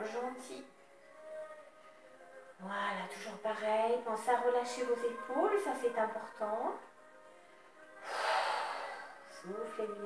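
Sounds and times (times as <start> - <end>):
faint background music: 0.0 - 10.0
woman exhaling: 8.0 - 9.2.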